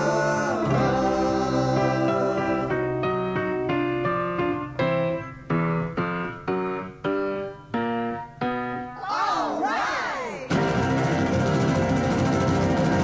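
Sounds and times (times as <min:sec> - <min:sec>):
keyboard chords: 0:10.5 - 0:13.0.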